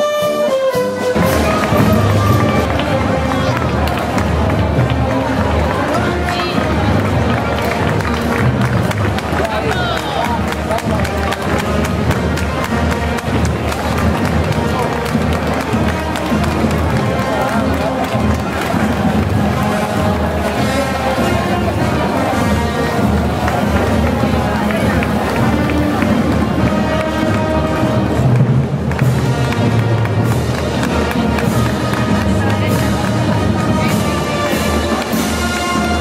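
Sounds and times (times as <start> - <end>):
crowd chatter: 0.0 - 36.0
parade band music: 0.0 - 36.0.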